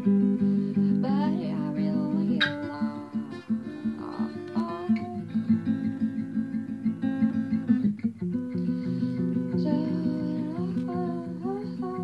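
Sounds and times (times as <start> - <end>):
woman's wordless vocal melody: 0.0 - 5.8, 8.5 - 12.0
acoustic guitar picking: 0.0 - 12.0.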